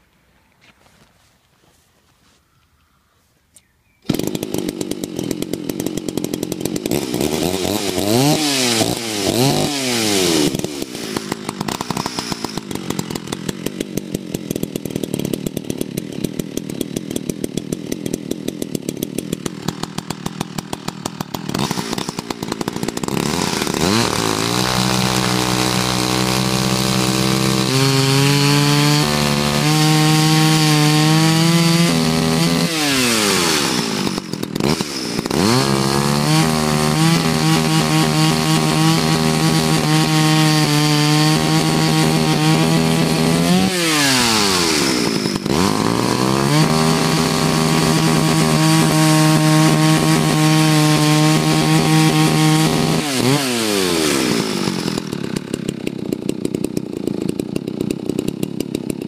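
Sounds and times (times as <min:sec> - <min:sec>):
chainsaw cutting through log: 0:04.0 - 0:59.0
chainsaw idling and revving: 0:04.0 - 0:59.0.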